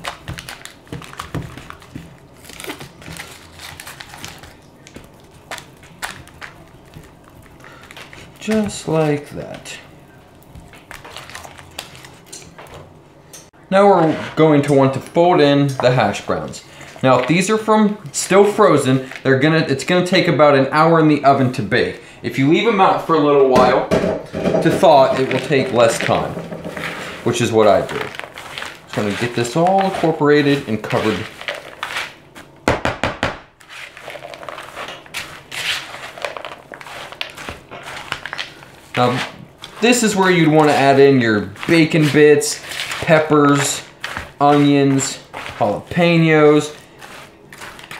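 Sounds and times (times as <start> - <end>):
hands squishing food mixture: 0.0 - 12.6, 13.7 - 23.8, 24.7 - 32.6, 33.6 - 47.9
butter rubbing on glass dish: 24.9 - 32.0.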